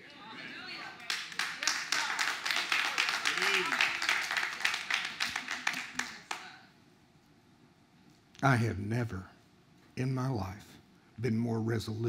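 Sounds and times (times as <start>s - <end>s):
crowd clapping: 0.9s - 6.6s.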